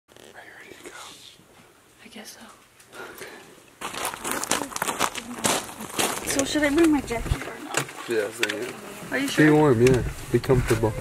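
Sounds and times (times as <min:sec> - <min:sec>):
person whispering: 0:00.3 - 0:01.4.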